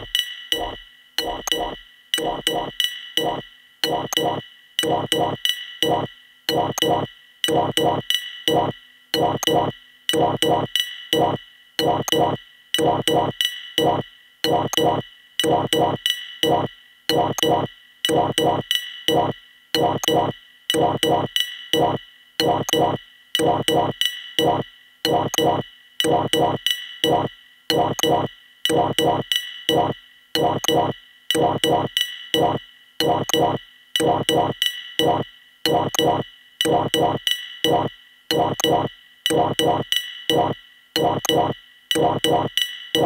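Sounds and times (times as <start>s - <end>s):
high ringing tones: 0.0s - 6.1s, 19.2s - 39.8s
techno track: 0.0s - 43.0s
sharp pitched electronic hits: 16.5s - 43.0s.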